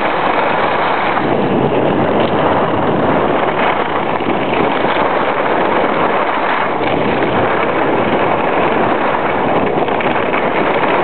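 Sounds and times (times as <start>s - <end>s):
wind rushing over microphone: 0.0s - 11.0s.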